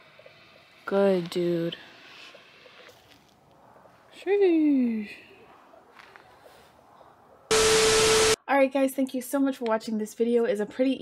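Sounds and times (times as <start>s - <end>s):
tv static burst with tone: 7.5s - 8.4s.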